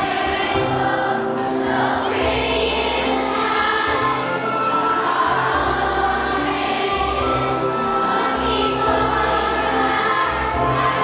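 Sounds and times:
children's choir singing: 0:00.0 - 0:11.0
musical accompaniment: 0:00.0 - 0:11.0.

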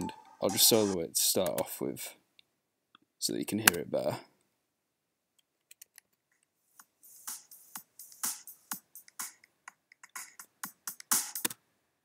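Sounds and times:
electronic drum beat: 0:00.0 - 0:01.0, 0:06.8 - 0:11.5.

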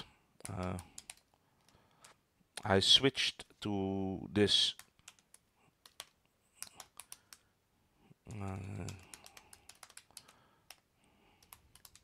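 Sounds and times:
computer keyboard key clicks: 0:04.8 - 0:07.4, 0:08.8 - 0:10.8, 0:11.4 - 0:12.0.

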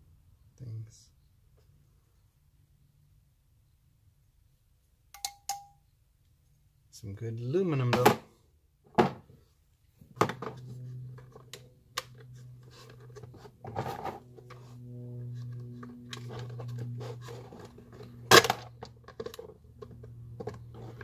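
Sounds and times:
low hum: 0:09.3 - 0:21.0.

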